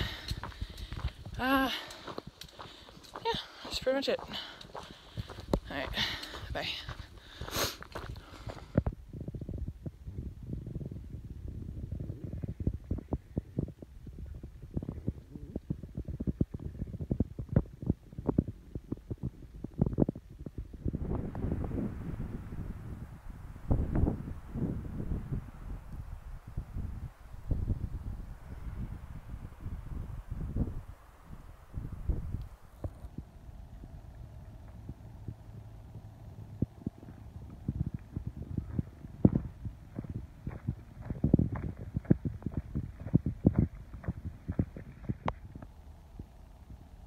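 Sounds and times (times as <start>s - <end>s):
walking on trail: 0.0s - 9.0s, 31.8s - 46.4s.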